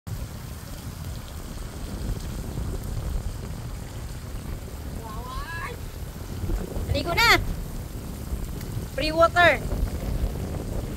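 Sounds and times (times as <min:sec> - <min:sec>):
fountain jets hissing and splashing: 0:00.1 - 0:10.9
wind buffeting microphone: 0:00.1 - 0:10.9.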